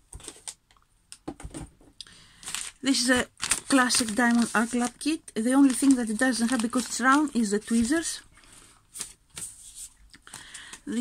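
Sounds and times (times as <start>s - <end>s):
hands handling plastic packaging: 2.3s - 11.0s.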